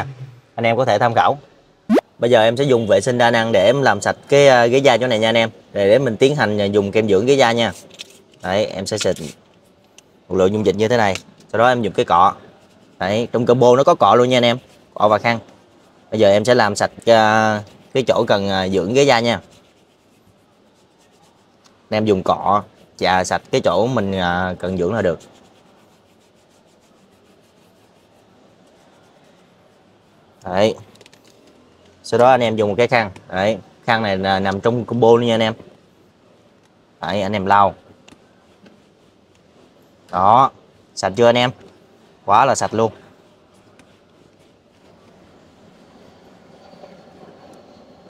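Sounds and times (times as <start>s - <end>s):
brush scrubbing leather seat: 11.8s - 22.4s, 23.1s - 30.1s
towel rubbing leather seat: 23.2s - 30.2s.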